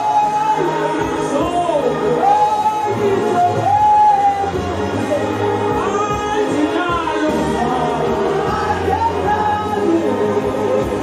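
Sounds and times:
low musical accompaniment: 0:00.0 - 0:11.0
voices singing along: 0:00.0 - 0:11.0.

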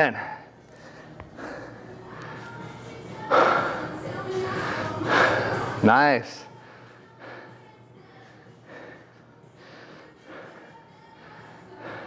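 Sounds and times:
man breathing hard: 0:00.0 - 0:05.8, 0:06.5 - 0:12.0.

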